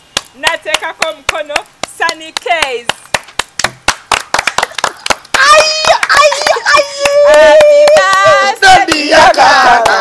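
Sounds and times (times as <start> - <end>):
people clapping: 0.2 - 10.0.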